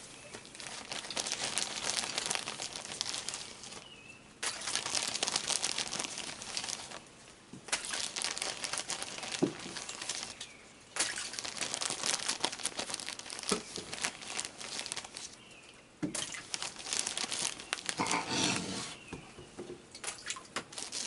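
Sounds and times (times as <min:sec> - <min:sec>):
plastic bag rustling: 0:00.0 - 0:15.4, 0:16.1 - 0:19.1, 0:20.7 - 0:21.0.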